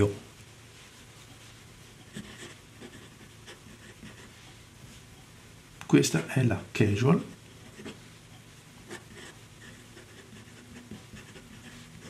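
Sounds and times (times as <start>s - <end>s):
pen nib scratching on paper: 1.9s - 4.5s, 7.2s - 8.0s, 8.8s - 12.0s.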